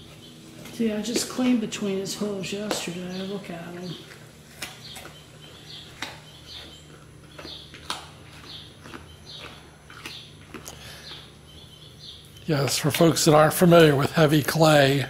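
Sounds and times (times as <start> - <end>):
small bird chirping: 0.0 - 14.2
faint low hum: 0.0 - 15.0.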